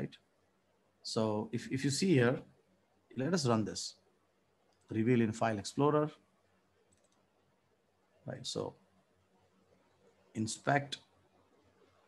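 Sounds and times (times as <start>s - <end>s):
faint mouse clicks: 4.6s - 4.9s, 6.8s - 7.3s.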